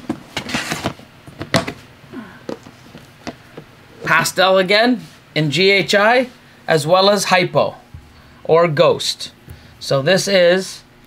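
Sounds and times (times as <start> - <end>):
plastic tubs knocking and clattering: 0.0 - 1.8.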